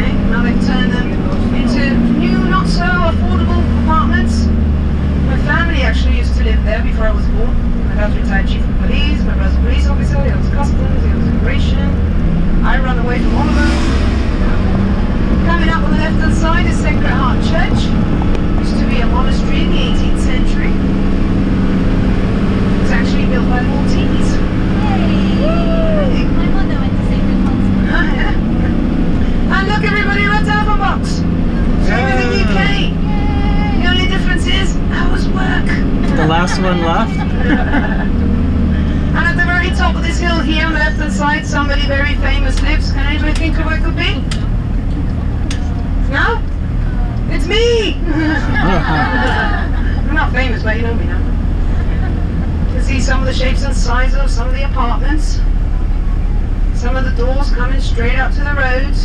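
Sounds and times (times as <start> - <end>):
people talking: 0.0 - 4.6, 5.2 - 12.0, 12.6 - 20.9, 22.8 - 38.2, 38.8 - 44.5, 45.2 - 59.0
minibus engine running: 0.0 - 59.0.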